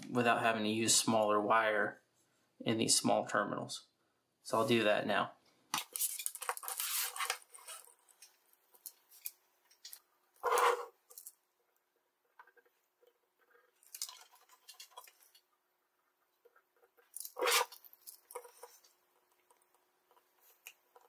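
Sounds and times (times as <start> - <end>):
hand tools clicking and scraping: 17.1 - 18.9.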